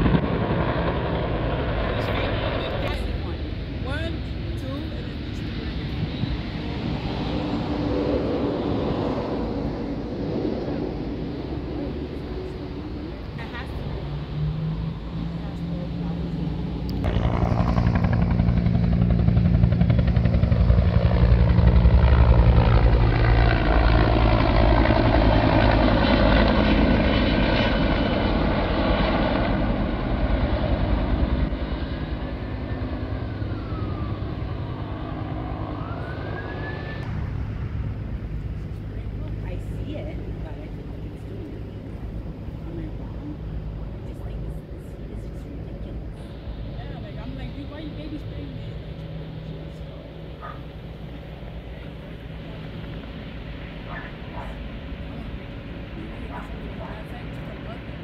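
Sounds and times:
helicopter flying past: 0:00.0 - 0:58.0
rising and falling whistle: 0:33.4 - 0:37.1.

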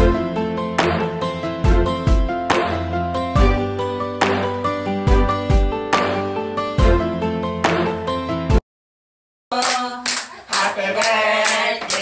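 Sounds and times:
group clapping in rhythm: 0:00.8 - 0:01.2, 0:02.5 - 0:02.9, 0:04.2 - 0:04.6, 0:09.5 - 0:12.0
voices singing along: 0:09.8 - 0:12.0.

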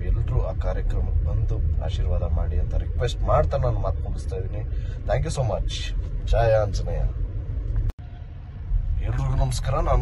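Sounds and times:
car rumble from inside cabin: 0:00.0 - 0:10.0.

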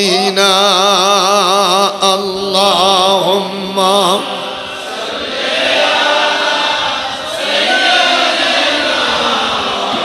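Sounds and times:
man singing unaccompanied: 0:00.0 - 0:04.7
overlapping voices: 0:03.3 - 0:10.0.

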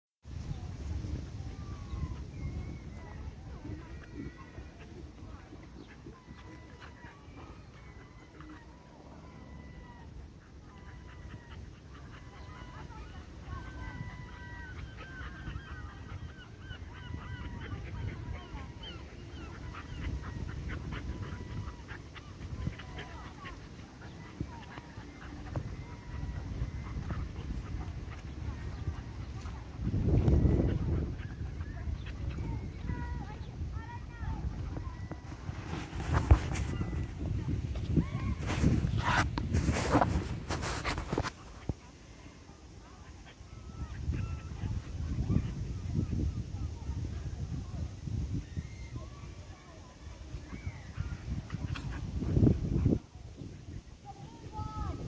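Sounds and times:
puppies whining and squealing: 0:01.6 - 0:33.0
puppies yipping: 0:01.8 - 0:45.8.

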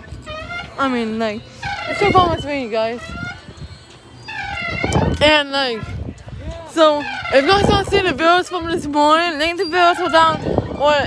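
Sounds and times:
low rumbling: 0:00.0 - 0:11.0
woman speaking: 0:00.8 - 0:03.2, 0:05.1 - 0:06.0, 0:06.7 - 0:11.0.

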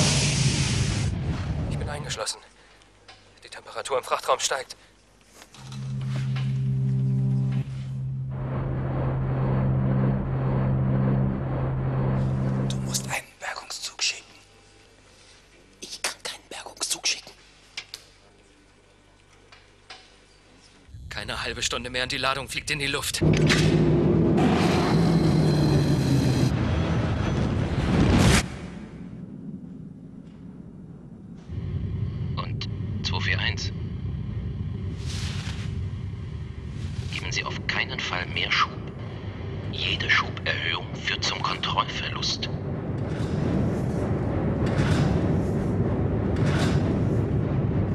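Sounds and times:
burst of hiss: 0:00.0 - 0:01.2
rushing rumbling noise: 0:00.0 - 0:02.2, 0:05.6 - 0:13.2, 0:20.9 - 0:47.9
steady low hum: 0:04.8 - 0:13.7, 0:28.7 - 0:47.9
higher note: 0:05.6 - 0:12.9.

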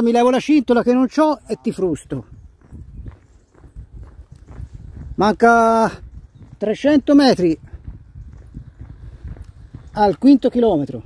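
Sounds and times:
footsteps walking: 0:02.2 - 0:06.8, 0:07.5 - 0:10.7.

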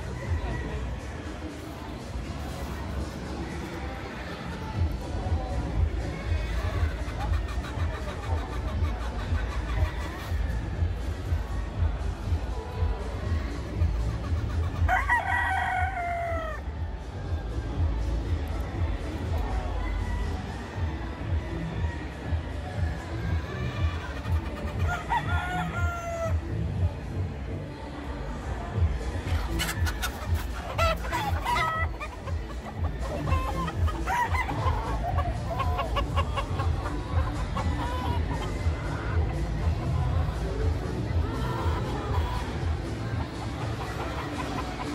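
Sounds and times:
roosters clucking and crowing: 0:00.0 - 0:26.7, 0:28.7 - 0:44.9
background music with beat: 0:04.6 - 0:27.5, 0:28.7 - 0:44.9.

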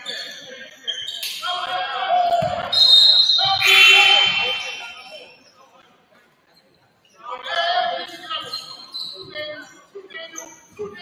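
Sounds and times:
voices calling out in echoing gym: 0:00.0 - 0:11.0.

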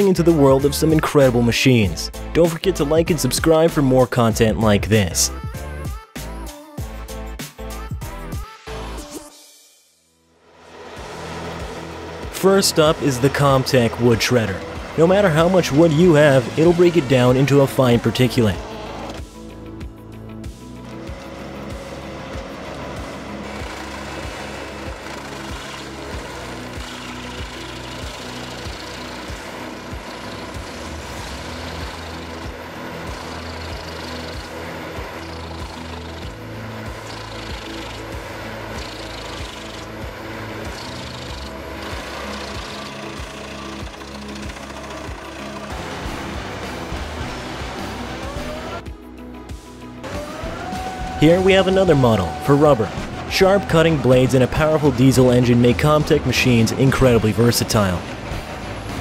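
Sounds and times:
music with steady beat: 0:05.3 - 0:09.8, 0:18.7 - 0:56.2
wood shredder rattling and knocking: 0:11.2 - 0:19.2, 0:20.7 - 0:48.8, 0:50.0 - 0:59.0.

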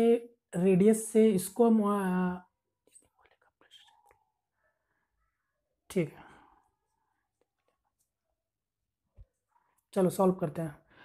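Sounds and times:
faint whispered muttering: 0:02.9 - 0:04.6.

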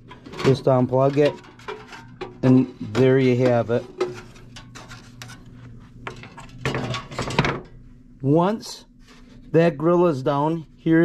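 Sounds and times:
rustling scrape: 0:03.7 - 0:06.0.

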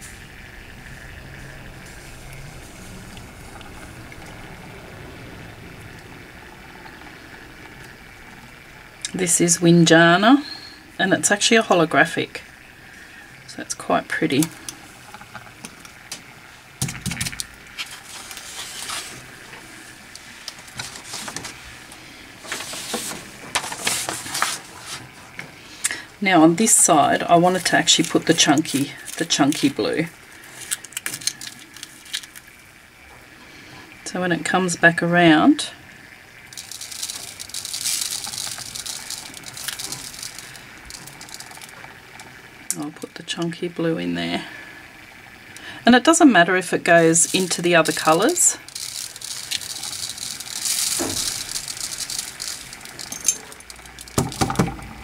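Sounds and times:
paper rustling: 0:17.8 - 0:19.3, 0:20.2 - 0:25.3, 0:47.0 - 0:54.6
glitter pattering onto paper: 0:36.4 - 0:41.9, 0:47.0 - 0:54.6.

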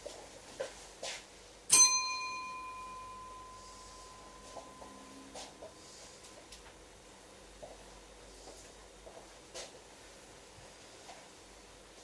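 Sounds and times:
small bell ringing: 0:01.7 - 0:06.2.

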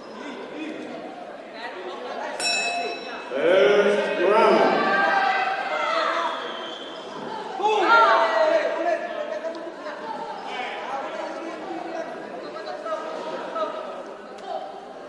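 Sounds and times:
quiet chatter: 0:00.0 - 0:15.0
voices shouting and calling out: 0:00.0 - 0:15.0.

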